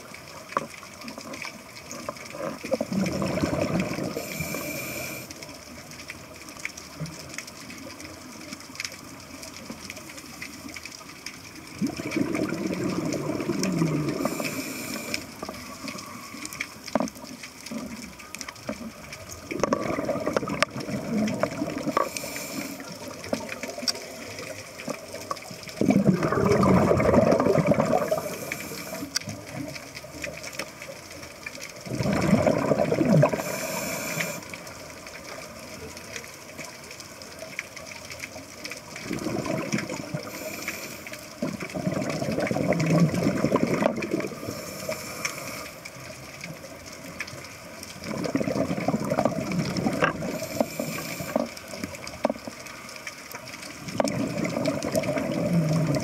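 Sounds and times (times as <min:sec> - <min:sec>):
gurgling exhaled bubbles: 0:00.0 - 0:05.2, 0:11.6 - 0:30.5, 0:31.6 - 0:35.6, 0:38.8 - 0:52.4, 0:53.7 - 0:56.0
regulator hiss: 0:04.1 - 0:05.7, 0:14.2 - 0:16.5, 0:22.0 - 0:23.2, 0:28.0 - 0:29.2, 0:33.3 - 0:34.6, 0:40.2 - 0:41.3, 0:44.4 - 0:45.9, 0:50.3 - 0:51.6.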